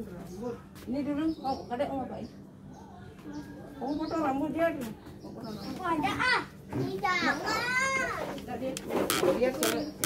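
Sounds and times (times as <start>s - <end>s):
young children calling: 6.0s - 8.3s.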